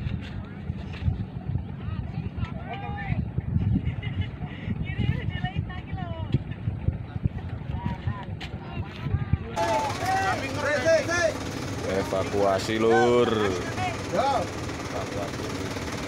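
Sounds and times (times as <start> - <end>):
wind rumbling on microphone: 0.0 - 9.6
faint voices: 4.3 - 15.4
men shouting: 9.6 - 15.4.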